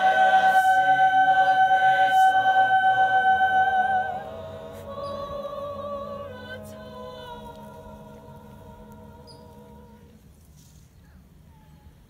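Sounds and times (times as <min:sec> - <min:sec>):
choir holding chord: 0:00.0 - 0:10.2
low background rumble: 0:00.0 - 0:12.0.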